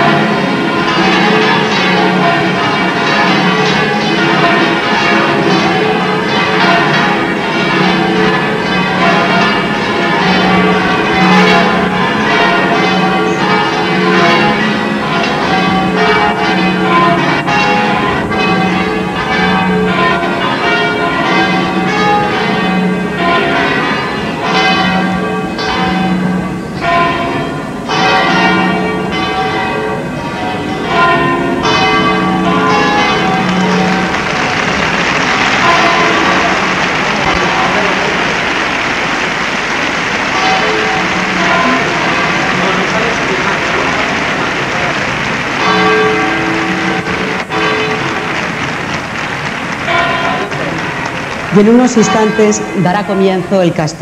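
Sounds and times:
church bells ringing in a peal: 0:00.0 - 0:54.0.

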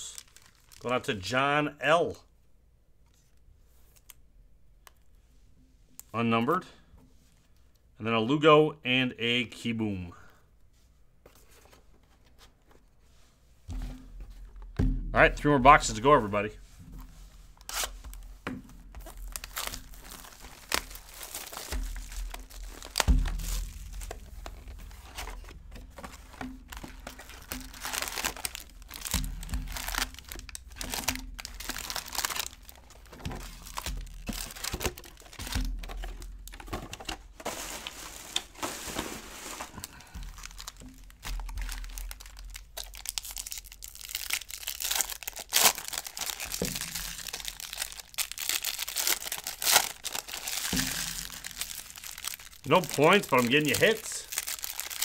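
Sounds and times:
plastic wrap crinkling and tearing: 0:00.0 - 0:01.0, 0:17.0 - 0:55.0.

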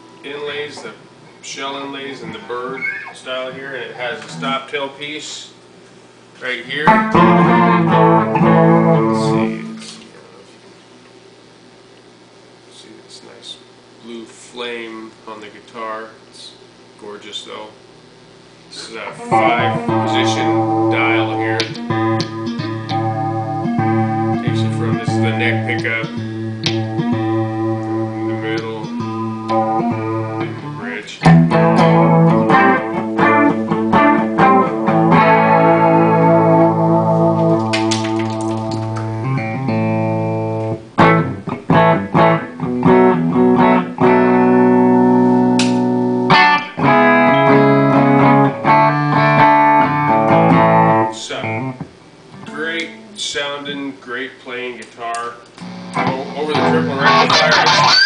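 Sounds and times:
electric guitar through amplifier: 0:00.0 - 0:05.3, 0:06.2 - 0:10.4, 0:18.7 - 0:53.8, 0:55.5 - 0:58.0.

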